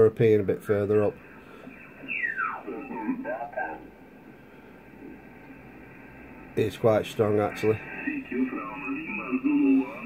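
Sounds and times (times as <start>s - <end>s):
faint radio band noise: 0.0s - 10.0s
garbled radio voice sliding in pitch: 2.0s - 3.9s, 7.3s - 10.0s.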